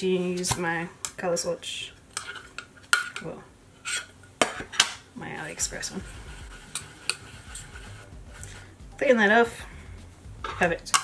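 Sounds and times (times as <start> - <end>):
soft scrape: 5.6 - 8.8
metal tin lid clacks: 10.5 - 11.0.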